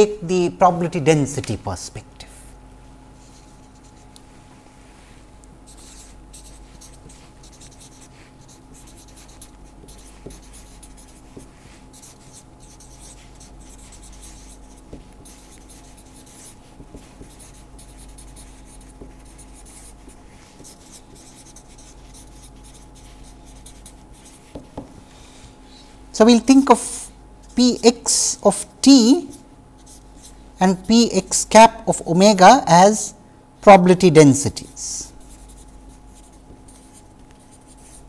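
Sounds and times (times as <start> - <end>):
faint electrical hum: 0.0 - 38.0
marker pen scratching on paper: 3.2 - 25.5, 26.2 - 33.0, 34.5 - 38.0.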